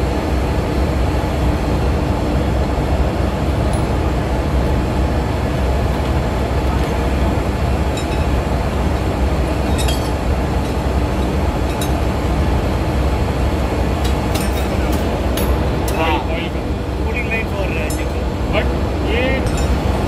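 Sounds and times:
engine-room machinery drone: 0.0 - 20.0
spanner clinking on metal nuts: 9.6 - 12.0, 14.0 - 16.0, 19.5 - 19.8.

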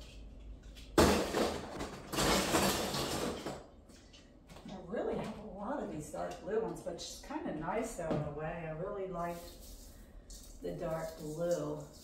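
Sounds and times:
plastic rustling and rattling: 0.9 - 3.7.

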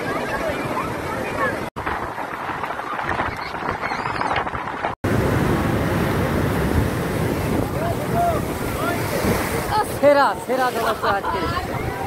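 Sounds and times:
wind buffeting microphone: 1.5 - 12.0
sea surf breaking: 5.0 - 12.0.

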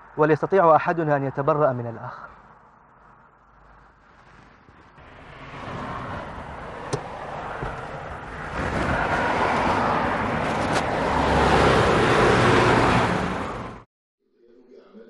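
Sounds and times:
car engine and tyre noise: 0.0 - 13.8.

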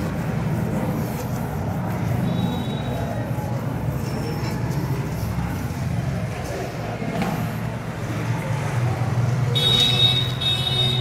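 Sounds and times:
marker squeaking on whiteboard: 0.1 - 4.6.

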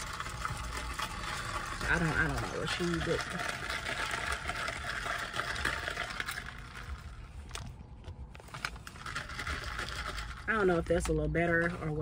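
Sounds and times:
ventilation fan blowing: 0.0 - 12.0.

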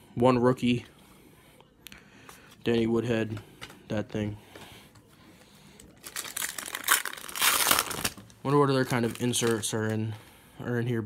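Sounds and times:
foil wrapper crinkling: 5.8 - 10.0.

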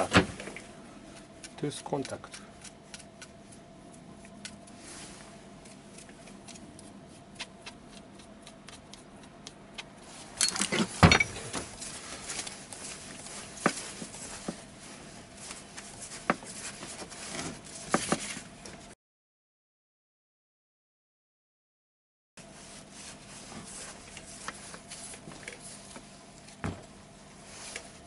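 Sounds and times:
metal parts clattering: 10.4 - 11.6
metal clunks: 10.4 - 11.7.

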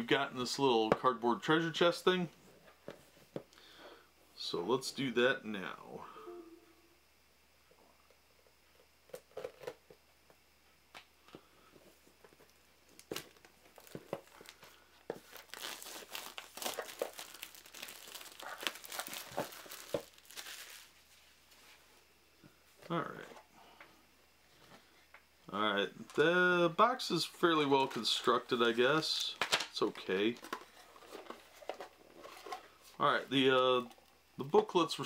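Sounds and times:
plastic shrink wrap crinkling: 12.9 - 21.0.

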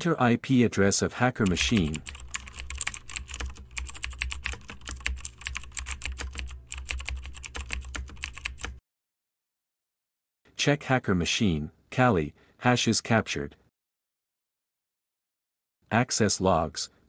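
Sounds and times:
computer keyboard typing: 1.4 - 8.8.

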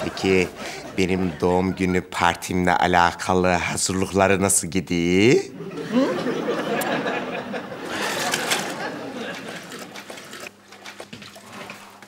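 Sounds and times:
mop swishing in water bucket: 7.8 - 12.0.

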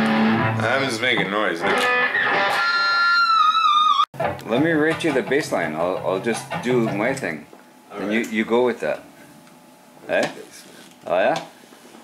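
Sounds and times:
electric guitar lead with vibrato: 0.0 - 0.8, 1.6 - 4.0.

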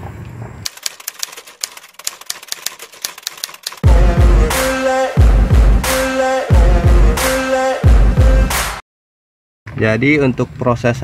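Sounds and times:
typewriter keys clacking: 0.7 - 3.9
music with heavy bass beat: 3.8 - 8.8.

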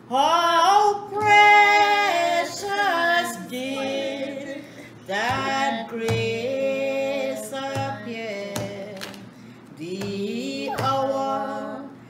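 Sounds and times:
woman singing unaccompanied: 0.0 - 12.0.

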